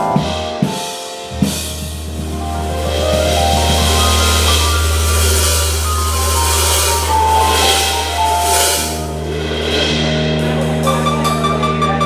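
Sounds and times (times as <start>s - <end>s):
sustained keyboard notes: 1.2s - 12.0s
low held note: 1.4s - 10.0s
cymbal wash and light drumming: 1.4s - 11.4s.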